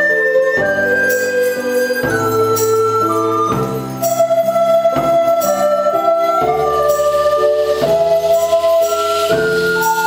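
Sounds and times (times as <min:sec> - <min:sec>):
recorder orchestra playing chords: 0:00.0 - 0:10.0.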